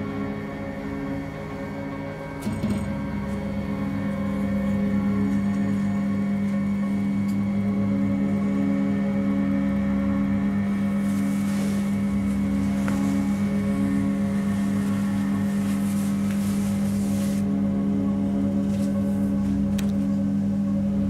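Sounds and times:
low droning horror score: 0.0s - 21.0s.

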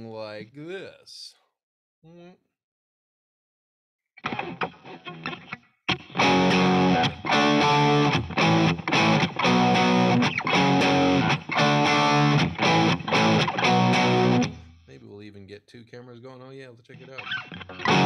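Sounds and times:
distorted electric guitar chords: 4.2s - 14.7s, 17.0s - 18.0s.

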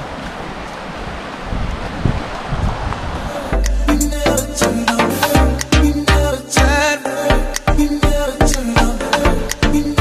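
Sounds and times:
wind on microphone: 0.0s - 3.8s
music with heavy bass and drums: 3.6s - 10.0s.

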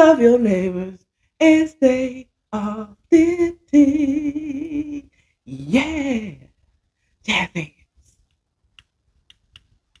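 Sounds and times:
faint sharp clicks: 8.2s - 10.0s.

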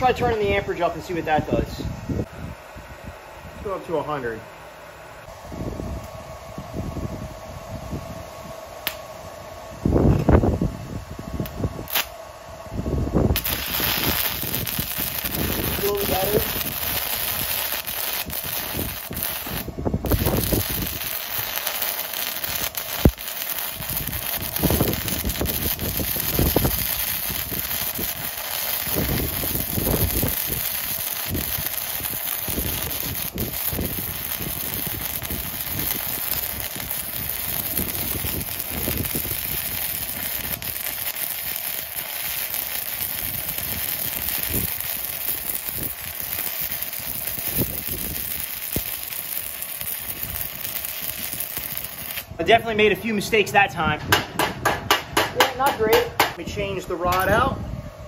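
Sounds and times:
welding arc crackling sizzle: 0.0s - 1.8s, 11.4s - 12.2s, 13.2s - 54.0s, 55.5s - 57.5s
sharp pop: 8.8s - 9.0s.

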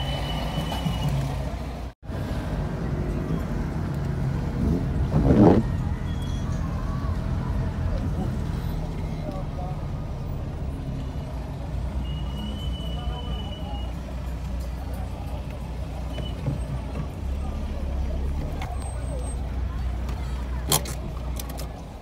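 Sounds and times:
car engine and tyres rumbling: 0.0s - 22.0s.

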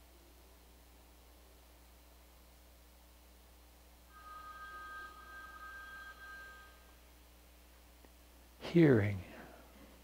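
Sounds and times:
meditation bell ringing: 4.1s - 7.2s.

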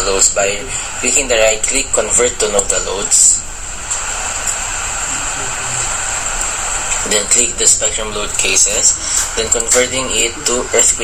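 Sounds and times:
constant hiss: 0.0s - 11.0s
high-pitched whine: 0.0s - 11.0s.

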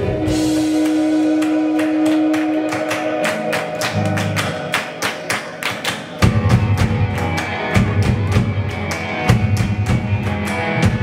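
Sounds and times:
hand claps: 0.4s - 11.0s.

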